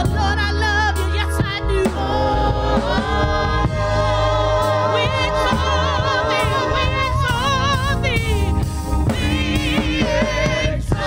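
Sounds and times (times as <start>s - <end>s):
drums: 0.0s - 11.0s
gospel choir singing in harmony: 0.0s - 11.0s
keyboard: 0.0s - 11.0s
low bass: 0.0s - 11.0s.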